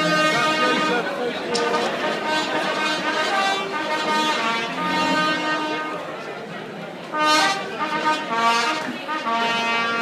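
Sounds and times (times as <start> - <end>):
trumpet notes: 0.0 - 6.3, 7.0 - 10.0.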